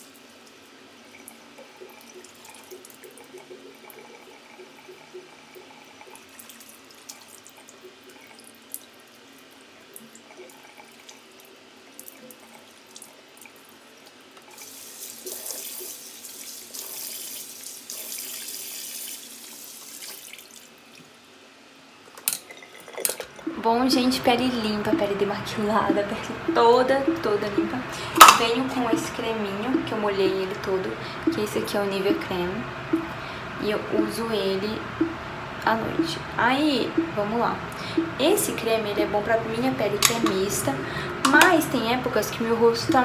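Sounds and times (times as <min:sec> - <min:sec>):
sink tap running: 0:23.3 - 0:43.0.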